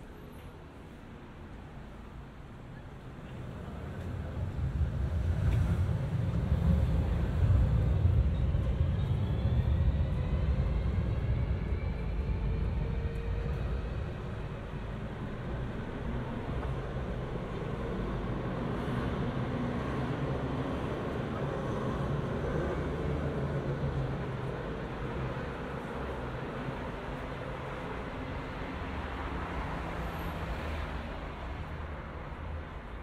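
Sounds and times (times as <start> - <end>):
steady traffic hum: 0.0 - 33.0
vehicle low rumble: 2.8 - 29.6.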